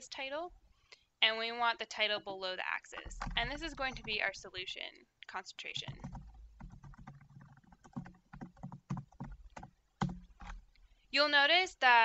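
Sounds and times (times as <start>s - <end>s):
typing on computer keyboard: 3.0s - 4.6s, 5.6s - 10.7s.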